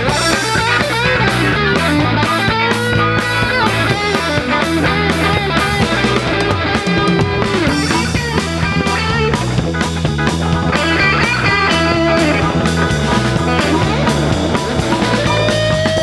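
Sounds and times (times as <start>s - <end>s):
bass line: 0.0s - 16.0s
drum kit: 0.0s - 16.0s
electric guitar bending notes: 0.0s - 16.0s.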